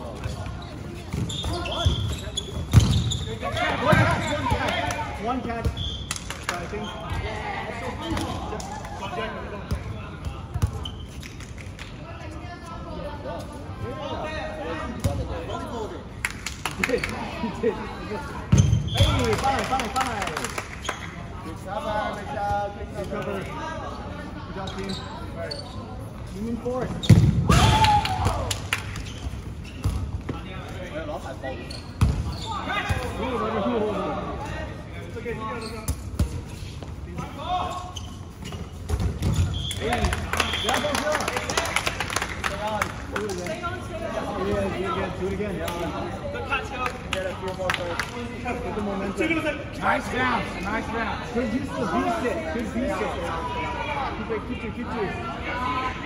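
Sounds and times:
dodgeballs thudding: 0:01.0 - 0:06.2, 0:26.9 - 0:28.6, 0:38.8 - 0:40.1.

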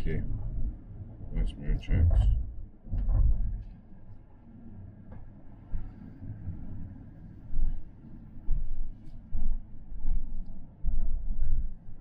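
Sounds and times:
car engine and tyre rumble: 0:00.2 - 0:03.7.

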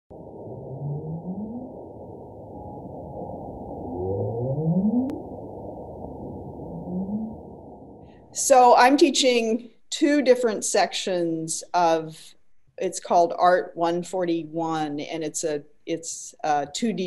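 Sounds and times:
whale calls: 0:00.1 - 0:08.4.

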